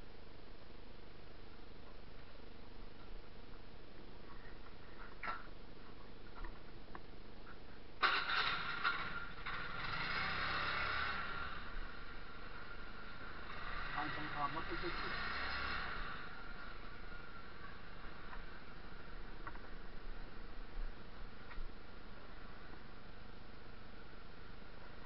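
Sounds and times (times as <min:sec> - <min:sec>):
motorcycle engine rumbling: 0:07.5 - 0:25.0.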